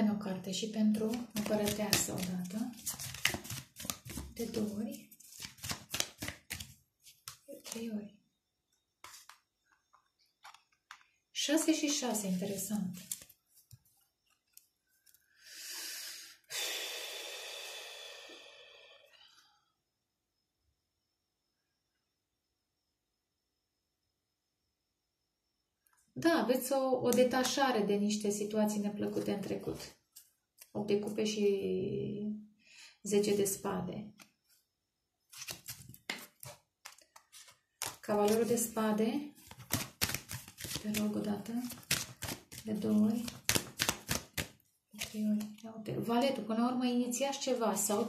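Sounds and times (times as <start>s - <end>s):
cards shuffling: 0.9s - 7.9s, 9.0s - 11.1s, 12.3s - 14.7s, 35.3s - 38.8s, 39.4s - 45.6s
person breathing in: 15.3s - 19.7s
person sighing exhale: 15.4s - 19.5s.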